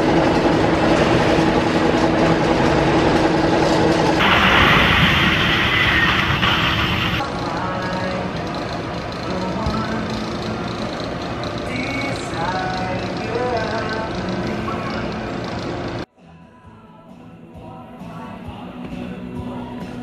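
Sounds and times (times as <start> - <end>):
roller coaster rumbling on wooden track: 0.1 - 7.2
bright rushing sound: 4.2 - 7.2.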